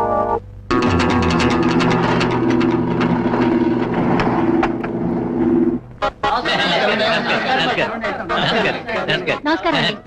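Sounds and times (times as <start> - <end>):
steady drone: 0.0 - 10.0.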